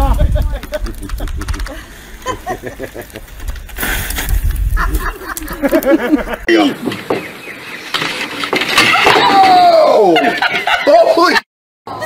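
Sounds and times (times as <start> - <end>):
person laughing: 0.2 - 3.2, 4.7 - 6.5, 10.0 - 11.4
bicycle crashing into snow: 3.7 - 4.8.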